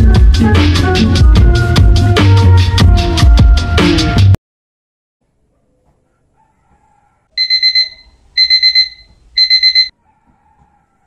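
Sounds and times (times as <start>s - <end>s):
digital alarm clock beeping: 7.4s - 9.9s.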